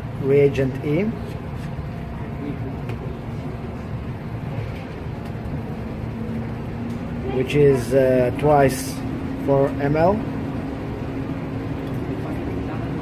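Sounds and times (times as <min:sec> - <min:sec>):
ventilation humming: 0:00.0 - 0:13.0.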